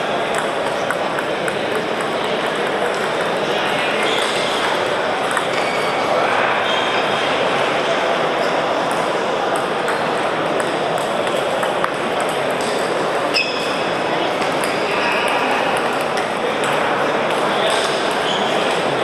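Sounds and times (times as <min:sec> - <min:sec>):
table tennis balls clicking: 0:00.0 - 0:06.0, 0:08.9 - 0:18.9
murmur of many voices: 0:00.0 - 0:19.0.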